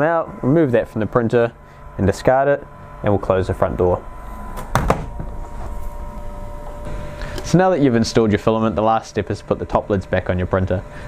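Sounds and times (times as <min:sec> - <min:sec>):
printer door knocking shut: 0:04.6 - 0:05.3.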